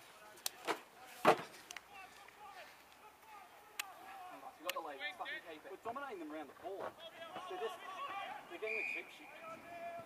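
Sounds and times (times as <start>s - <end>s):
faint distant shouting: 7.0s - 10.0s.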